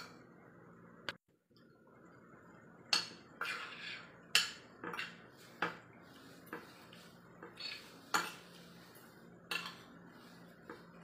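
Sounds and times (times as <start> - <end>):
cutlery scraping ceramic plate: 2.9 - 11.0.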